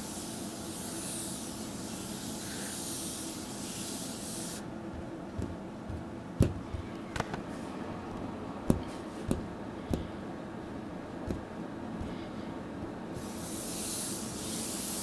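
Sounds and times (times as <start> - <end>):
steady high hiss: 0.0 - 4.7, 13.1 - 15.0
fingertips tapping touch surface: 4.9 - 7.4, 8.1 - 10.2, 11.2 - 12.2.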